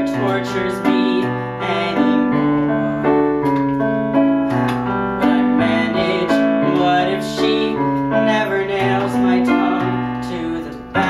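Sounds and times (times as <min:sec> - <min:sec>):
piano slow chords: 0:00.0 - 0:11.0.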